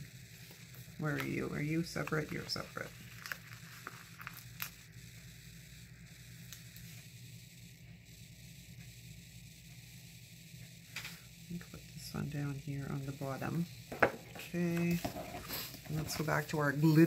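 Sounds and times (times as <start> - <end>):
low steady hum: 0.0 - 17.0
paper sticker being peeled: 2.0 - 4.7.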